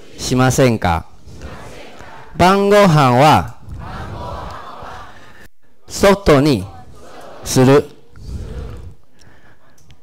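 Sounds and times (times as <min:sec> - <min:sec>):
students reciting in unison: 0:00.0 - 0:10.0.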